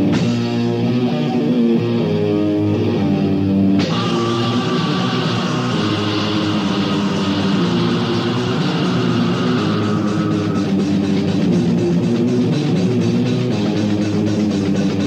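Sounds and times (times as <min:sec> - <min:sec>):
death metal band playing: 0:00.0 - 0:15.0.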